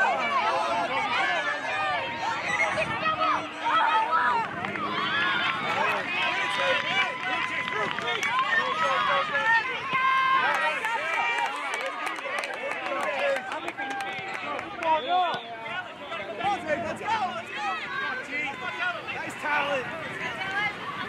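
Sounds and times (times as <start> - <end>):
crowd shouting and calling: 0.0 - 21.0.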